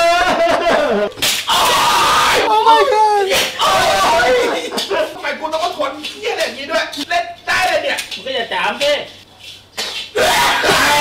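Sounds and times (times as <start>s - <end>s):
people talking: 2.4s - 9.2s.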